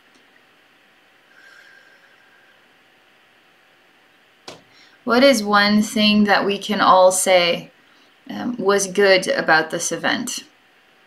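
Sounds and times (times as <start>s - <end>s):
faint steady hiss: 0.0s - 11.0s
faint thin hum: 0.0s - 11.0s.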